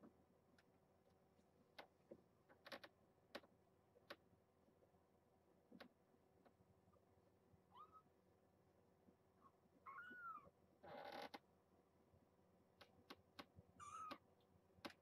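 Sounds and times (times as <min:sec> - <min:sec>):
kitten mewing: 0:09.9 - 0:10.5, 0:13.8 - 0:14.2.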